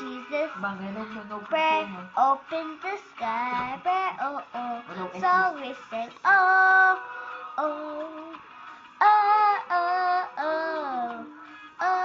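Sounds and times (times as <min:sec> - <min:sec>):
girl singing: 0:00.0 - 0:08.4, 0:09.0 - 0:12.0.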